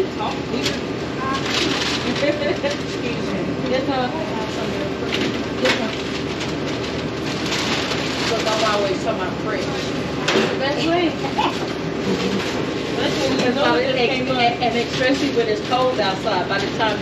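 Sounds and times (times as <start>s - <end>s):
clatter and rustle of packing: 1.3s - 3.2s, 4.6s - 10.5s
indistinct voices: 8.2s - 17.0s.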